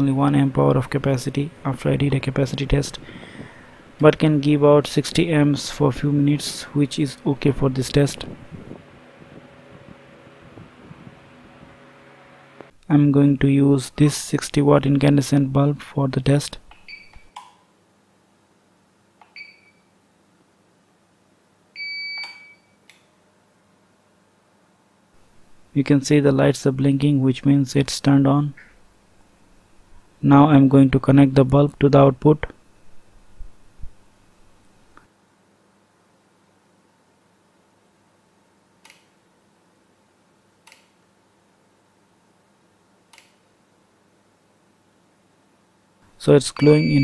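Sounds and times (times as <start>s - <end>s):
faint electrical hum: 0.0s - 47.0s
electronic beeps: 46.5s - 47.0s.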